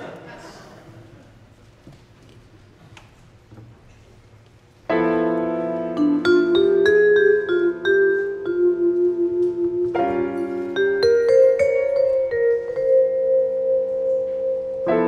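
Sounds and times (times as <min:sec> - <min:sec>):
vibraphone and piano chord: 0:04.9 - 0:15.0
vibraphone melody: 0:05.7 - 0:15.0.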